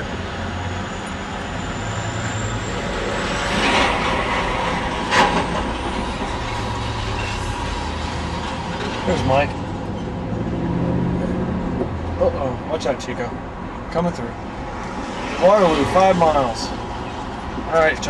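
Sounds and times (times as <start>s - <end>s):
car engine and road noise: 0.0s - 18.0s.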